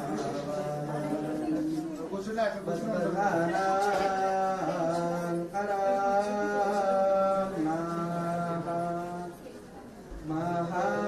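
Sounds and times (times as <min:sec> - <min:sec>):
devotional mantra chanting: 0:00.0 - 0:09.5, 0:10.2 - 0:11.0.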